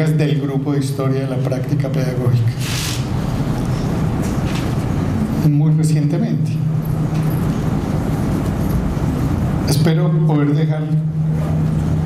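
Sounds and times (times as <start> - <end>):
low rumble with hiss: 0.0 - 12.0.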